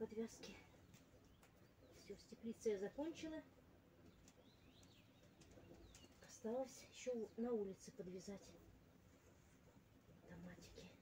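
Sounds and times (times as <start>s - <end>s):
faint songbird chirps: 0.0s - 8.9s.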